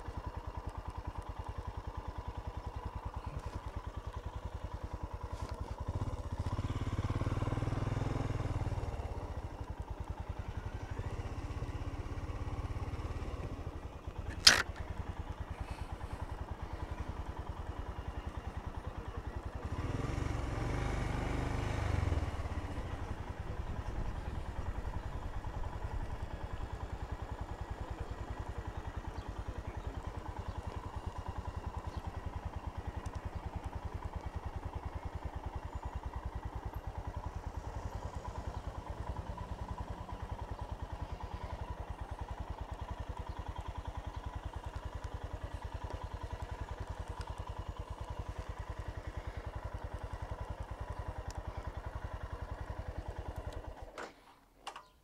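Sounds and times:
motorcycle engine running: 0.0s - 54.6s.

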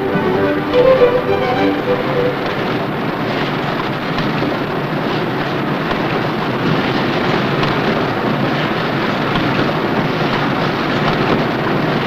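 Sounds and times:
machinery running: 0.0s - 5.0s.

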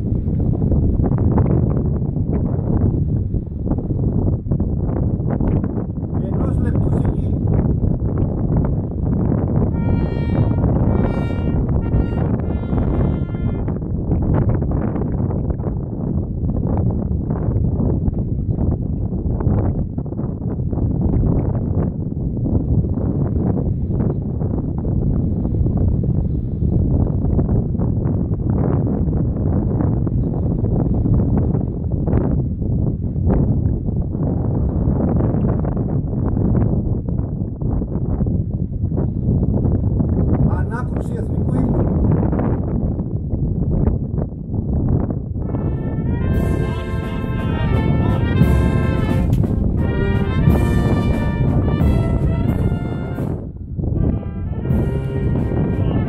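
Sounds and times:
wind buffeting microphone: 0.0s - 56.0s
short pitched tones: 9.7s - 13.7s, 45.6s - 56.0s.

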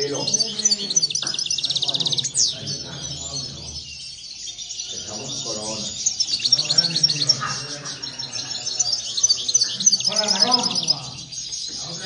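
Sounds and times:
goldfinches singing: 0.0s - 12.0s.

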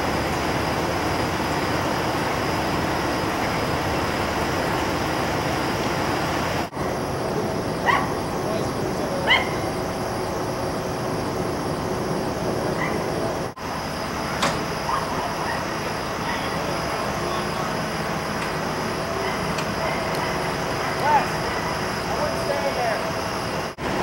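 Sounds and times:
road traffic: 0.0s - 24.0s.

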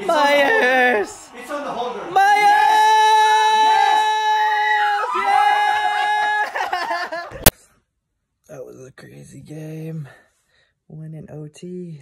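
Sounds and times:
man screaming in celebration: 2.1s - 6.8s.

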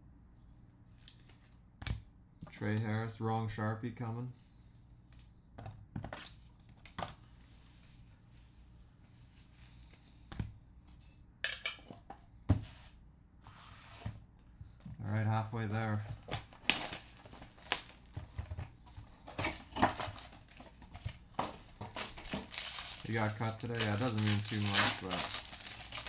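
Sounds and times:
foil wrapper crinkling and tearing: 16.5s - 18.2s, 21.8s - 26.0s.

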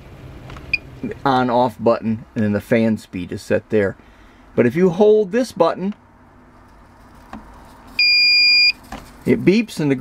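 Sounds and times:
high-pitched control panel beep: 8.0s - 8.8s.

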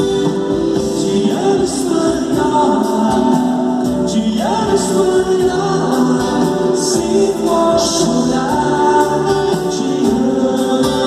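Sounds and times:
people singing: 0.0s - 11.0s
strummed acoustic guitars: 0.0s - 11.0s.

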